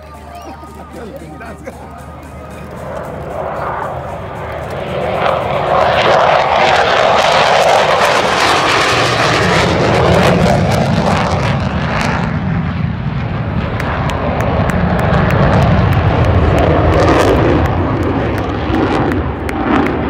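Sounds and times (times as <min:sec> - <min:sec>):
jet fighter engine roar: 0:00.8 - 0:20.0.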